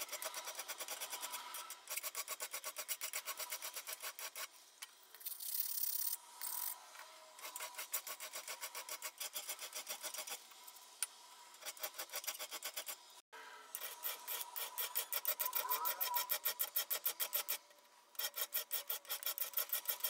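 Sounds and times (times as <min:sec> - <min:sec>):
hand file rasping on steel: 0:18.2 - 0:20.0.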